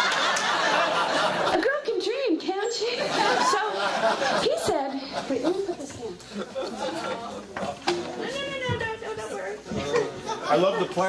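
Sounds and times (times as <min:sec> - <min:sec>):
audience chatter: 0:00.0 - 0:11.0
people talking off-mic: 0:01.5 - 0:11.0.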